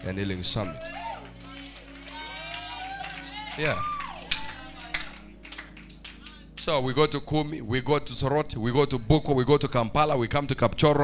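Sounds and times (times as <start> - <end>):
low background music tones: 0.0 - 11.0.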